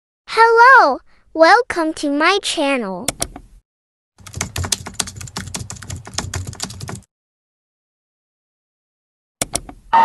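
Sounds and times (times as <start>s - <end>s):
keyboard typing: 4.2s - 7.1s.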